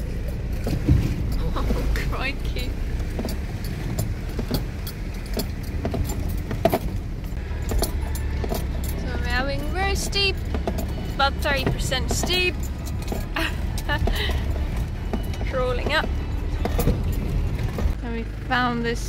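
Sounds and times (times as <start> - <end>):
vehicle knocks and rattles: 0.0 - 18.0
low engine drone: 0.0 - 19.0.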